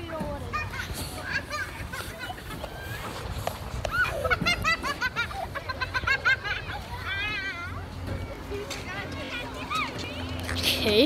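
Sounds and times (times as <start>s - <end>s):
children calling and squealing: 0.0s - 11.0s
hubbub of voices: 0.0s - 11.0s.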